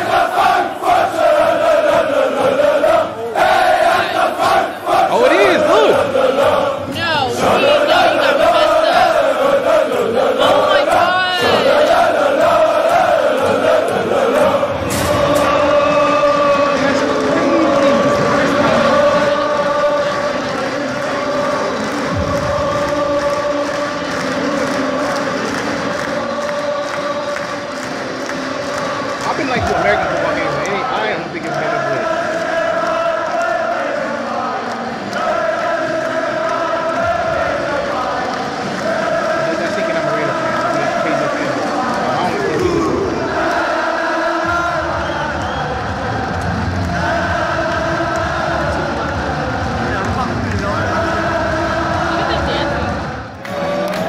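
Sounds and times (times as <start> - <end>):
stadium crowd singing a chant: 0.0 - 54.0.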